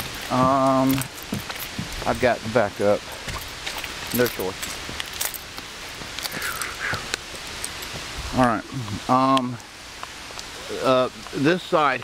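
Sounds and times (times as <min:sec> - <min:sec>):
steady rain falling: 0:00.0 - 0:12.0.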